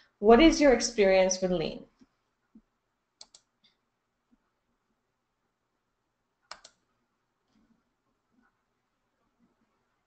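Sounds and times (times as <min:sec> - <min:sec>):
sharp clicks: 0:03.2 - 0:03.5, 0:06.5 - 0:06.8.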